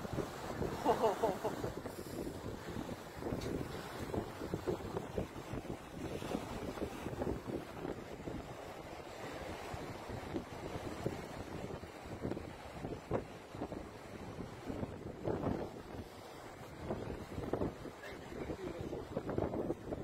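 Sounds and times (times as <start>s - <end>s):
surf breaking on beach: 0.0s - 12.3s
wind buffeting microphone: 0.0s - 20.0s.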